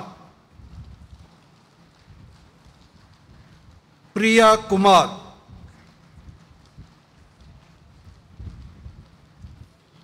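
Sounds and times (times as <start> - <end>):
faint hall ambience: 0.0 - 10.0
echoing pa announcement: 4.2 - 5.5
light footsteps on stage: 5.4 - 10.0.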